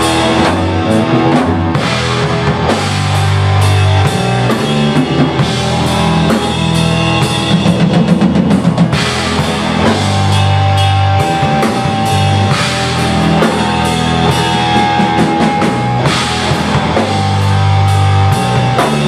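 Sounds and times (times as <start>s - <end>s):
bass guitar notes: 0.0s - 19.0s
drum kit: 0.0s - 19.0s
electric guitar: 0.0s - 19.0s.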